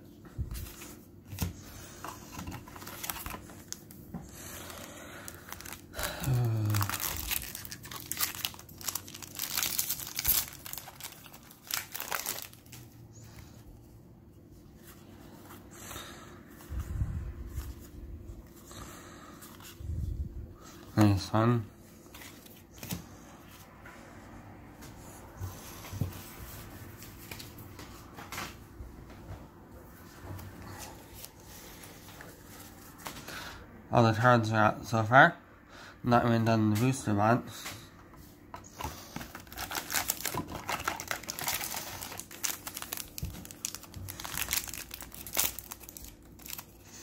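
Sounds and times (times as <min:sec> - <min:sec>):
cards rustling: 0:00.6 - 0:13.6, 0:38.7 - 0:47.0
foil wrapper tearing and crinkling: 0:04.8 - 0:12.8, 0:39.3 - 0:47.0.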